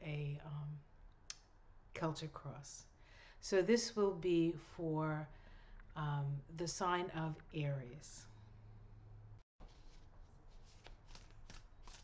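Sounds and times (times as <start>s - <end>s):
cards being shuffled: 9.6s - 12.0s.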